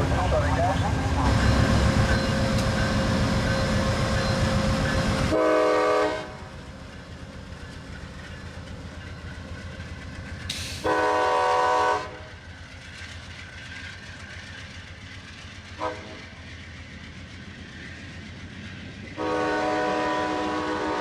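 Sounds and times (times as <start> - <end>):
loud low train rumble: 0.0 - 21.0
railcars rolling by: 0.0 - 21.0
locomotive air horn blasts: 5.2 - 6.4, 10.8 - 12.2, 15.8 - 16.2, 19.2 - 21.0.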